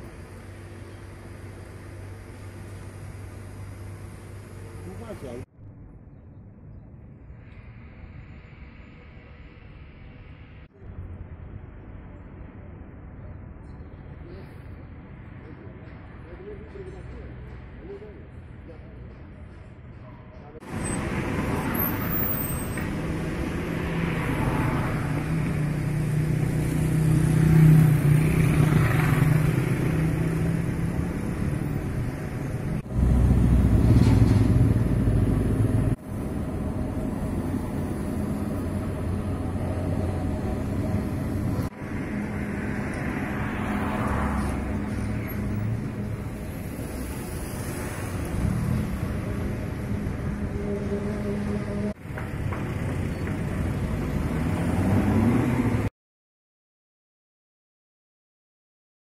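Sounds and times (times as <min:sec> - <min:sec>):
road traffic noise: 0:00.0 - 0:55.9.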